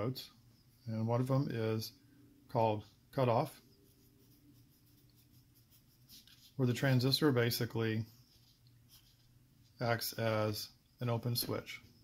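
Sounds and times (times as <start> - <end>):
pen scratching on paper: 3.8 - 6.6.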